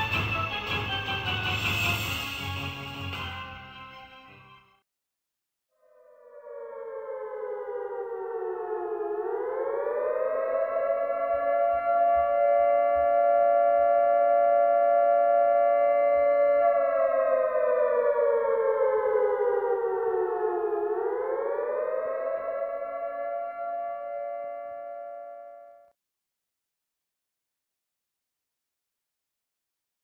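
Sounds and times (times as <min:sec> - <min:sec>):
siren wailing: 0:05.8 - 0:25.9.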